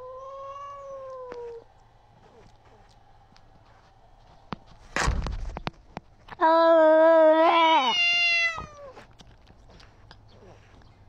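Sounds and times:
cat yowling: 0.0s - 1.7s, 6.4s - 9.0s.

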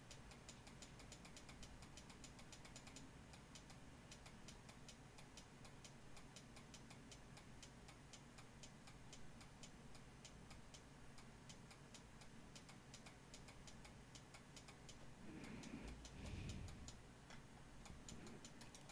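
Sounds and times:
fast faint ticking: 0.0s - 18.9s
low steady hum: 0.0s - 18.9s.

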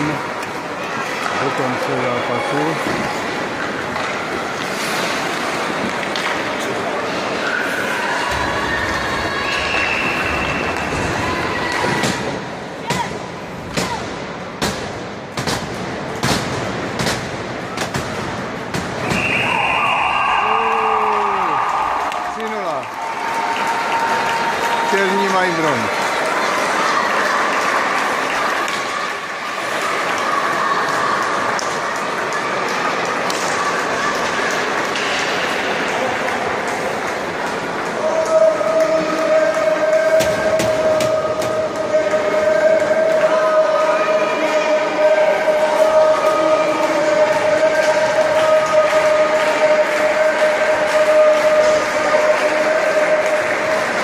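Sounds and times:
arena noise: 0.0s - 54.0s
people calling and shouting: 0.0s - 54.0s
hockey sticks and puck clacking: 2.4s - 7.2s, 9.2s - 19.6s, 23.6s - 54.0s.

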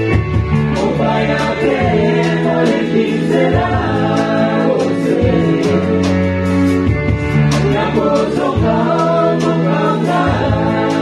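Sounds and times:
choir singing over a band: 0.0s - 11.0s
sustained bass line: 0.0s - 11.0s.

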